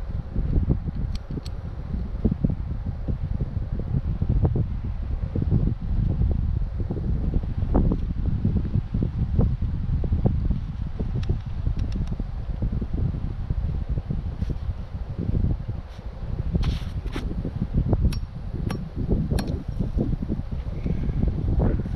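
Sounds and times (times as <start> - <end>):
wind on microphone: 0.0 - 21.9.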